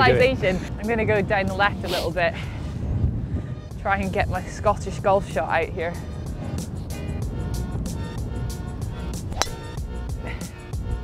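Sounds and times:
golf driver striking ball: 9.3s - 9.8s.

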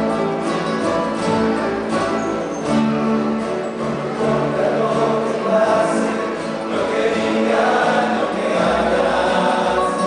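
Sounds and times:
double bass: 0.0s - 10.0s
strummed acoustic guitars: 0.0s - 10.0s
male chorus singing: 3.9s - 10.0s.

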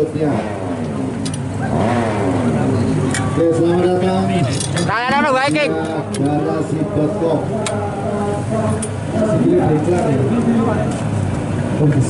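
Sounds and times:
indistinct voices talking: 0.0s - 12.0s.

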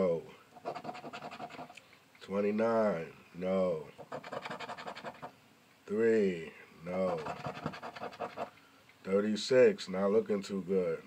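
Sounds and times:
scratching a scratch-off ticket: 0.6s - 1.7s, 4.0s - 5.3s, 6.9s - 8.5s.

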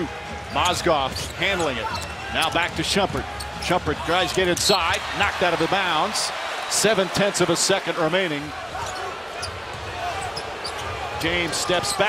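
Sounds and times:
sneaker squeaks: 0.4s - 2.6s, 8.8s - 11.0s.

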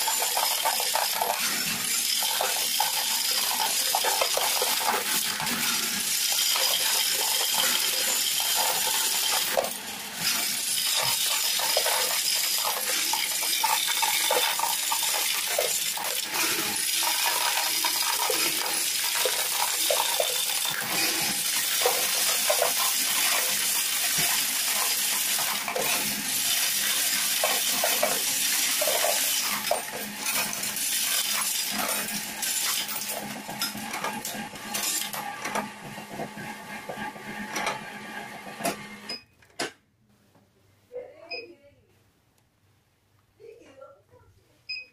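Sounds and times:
coins clinking: 0.0s - 33.3s.

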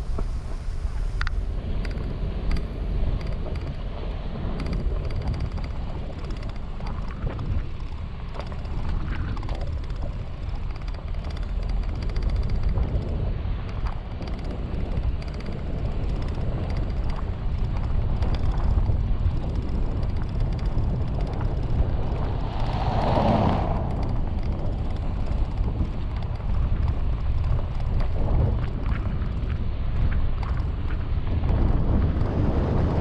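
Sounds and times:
vehicle on gravel road: 0.0s - 33.0s
wind on microphone: 0.0s - 33.0s
oncoming vehicle passing: 21.4s - 26.3s.

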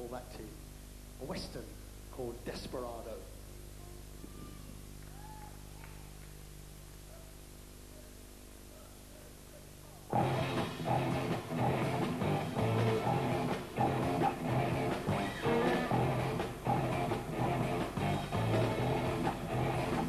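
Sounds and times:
bass guitar low riff: 10.1s - 20.0s
live rock band playing: 10.1s - 20.0s.

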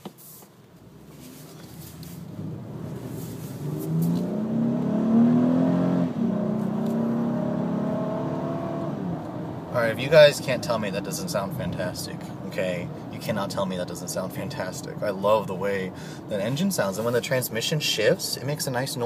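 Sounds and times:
car engine accelerating hard: 0.9s - 9.7s.

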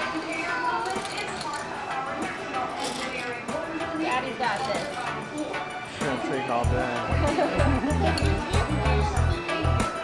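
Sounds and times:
chatter of children and adults: 0.0s - 10.0s.

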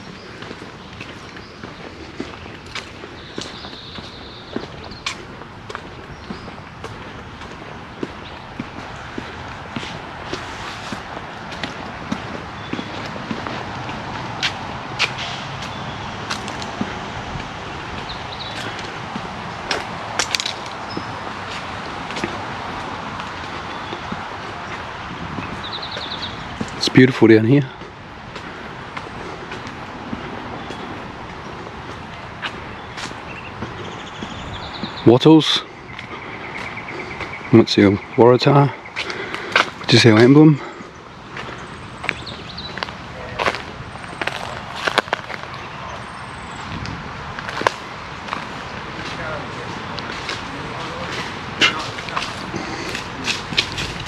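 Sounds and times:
bird chirping: 0.0s - 10.4s, 12.1s - 13.7s, 17.6s - 22.4s, 23.3s - 27.9s, 30.2s - 46.9s
footsteps on dirt track: 0.0s - 54.0s
steady noisy rush: 0.0s - 54.0s
steady outdoor hiss: 0.0s - 54.0s.

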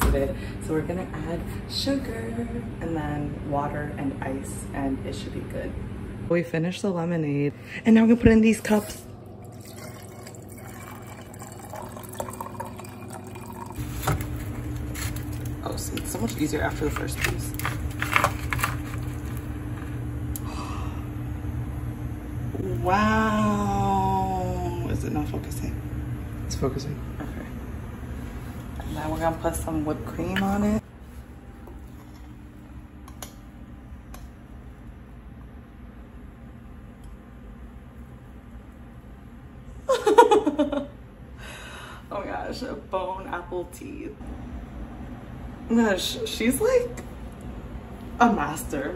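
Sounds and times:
low steady hum: 0.0s - 48.9s
lemonade pouring into glass: 9.4s - 13.8s.

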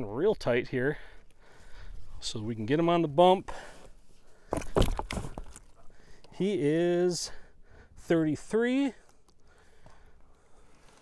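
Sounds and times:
fish thumping on wet board: 4.5s - 5.7s.

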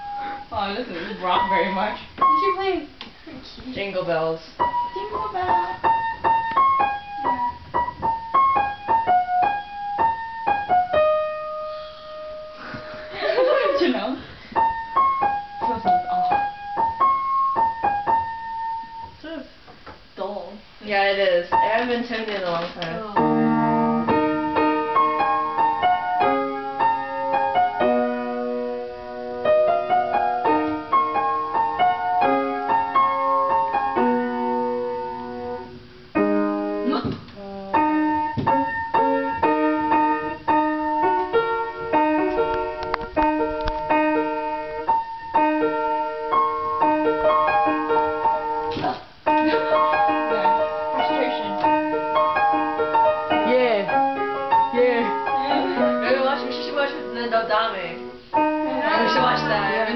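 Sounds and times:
out-of-tune upright piano: 0.0s - 20.1s, 21.0s - 59.9s.

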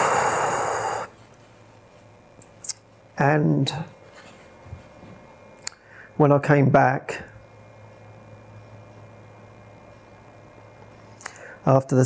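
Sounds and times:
man breathing after crying: 0.0s - 1.1s.

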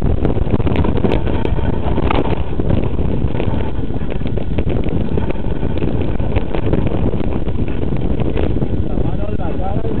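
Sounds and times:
bike rattling over bumps: 0.0s - 10.0s
wind buffeting microphone: 0.0s - 10.0s.

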